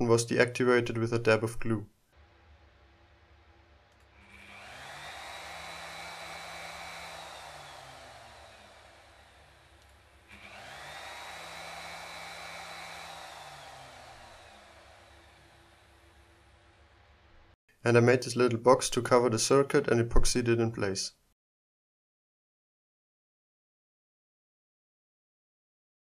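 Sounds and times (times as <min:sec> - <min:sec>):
router motor whining: 0:03.9 - 0:16.7.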